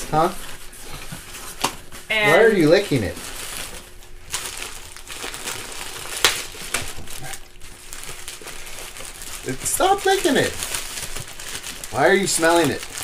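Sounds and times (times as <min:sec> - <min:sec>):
plastic packaging crinkling: 0:00.0 - 0:13.0.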